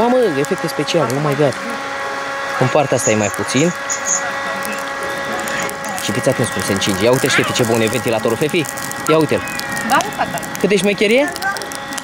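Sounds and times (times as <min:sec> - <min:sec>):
coals crackling: 0:00.0 - 0:12.0
handheld fan whine: 0:00.0 - 0:12.0.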